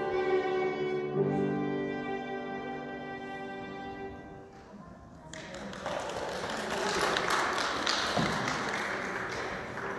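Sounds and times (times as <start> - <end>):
crowd applause: 5.3 - 9.9.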